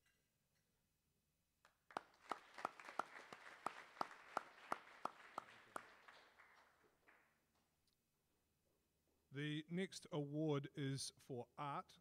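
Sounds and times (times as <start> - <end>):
close hands clapping evenly: 1.6 - 7.7
audience applause: 1.9 - 7.3.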